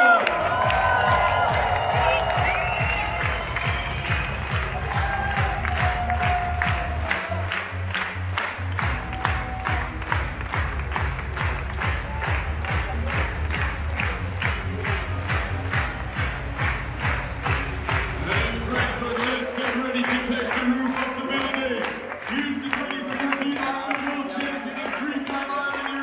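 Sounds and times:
crowd clapping along: 0.0s - 26.0s
music with heavy bass beat: 0.3s - 7.1s, 7.7s - 19.2s.

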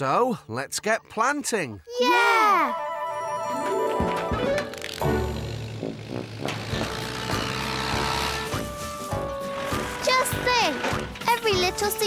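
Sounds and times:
gentle background music: 2.4s - 12.0s
small tractor engine running: 4.0s - 11.8s.

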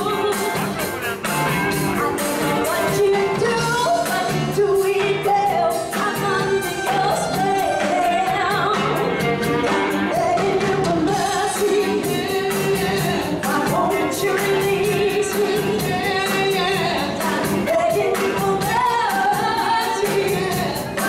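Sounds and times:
live band playing: 0.0s - 21.0s
steady drum beat: 0.0s - 21.0s
lead vocalist singing: 1.9s - 21.0s.

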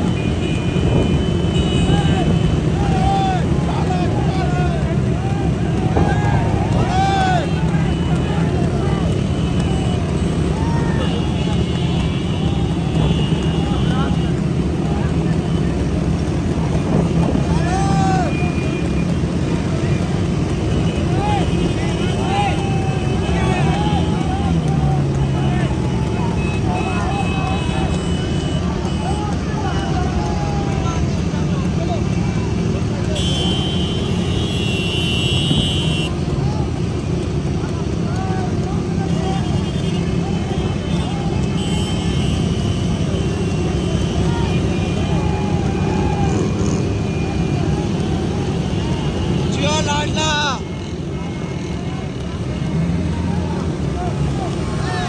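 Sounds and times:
horns sounding: 0.0s - 55.0s
motorcycle engines rumbling: 0.0s - 55.0s
people shouting: 0.0s - 55.0s.

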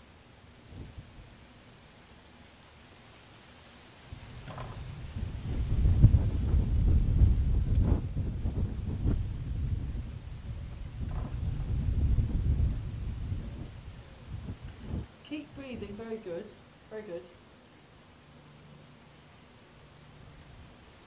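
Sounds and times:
wind buffeting microphone: 0.6s - 1.5s, 4.1s - 16.2s.

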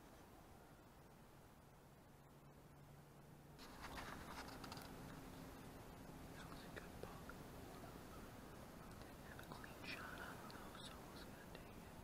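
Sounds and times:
small ticks and rustles: 3.6s - 8.0s, 8.6s - 12.0s.

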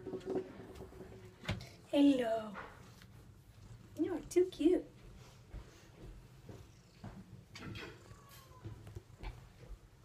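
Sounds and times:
cat purring: 0.0s - 10.0s.

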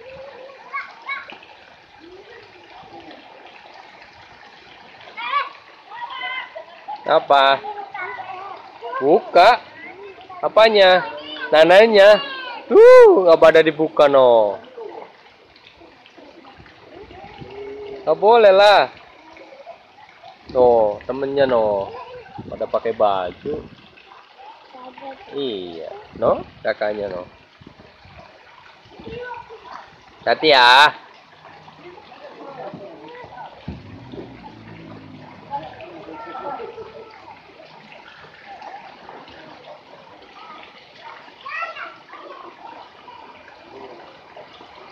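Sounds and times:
moving water: 0.0s - 44.9s
faint distant voices: 14.5s - 22.8s, 31.0s - 44.9s.

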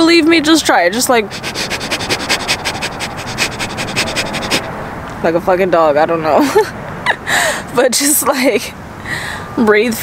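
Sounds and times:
woman breathing rapidly: 1.2s - 4.8s, 7.2s - 7.7s, 9.0s - 9.6s.

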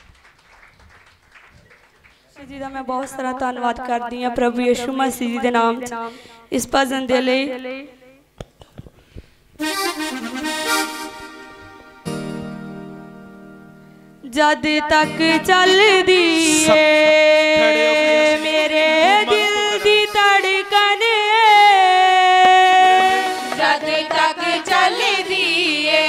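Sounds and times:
reedy keyboard playing hymn: 9.6s - 26.0s.

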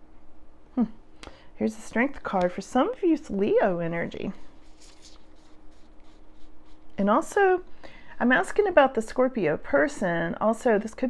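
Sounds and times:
faint steady hum: 0.0s - 11.0s
cards being shuffled: 2.1s - 3.4s, 4.2s - 7.0s.

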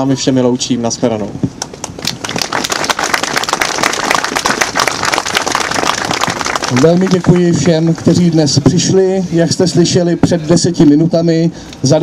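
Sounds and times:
crowd clapping: 1.6s - 8.4s.

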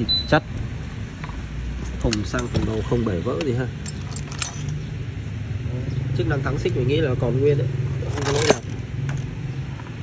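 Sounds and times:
metallic clicks and rattle: 1.8s - 4.8s.

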